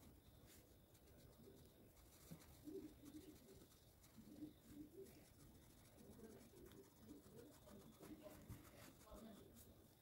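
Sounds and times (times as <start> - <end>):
bird cooing faintly: 1.3 - 8.5.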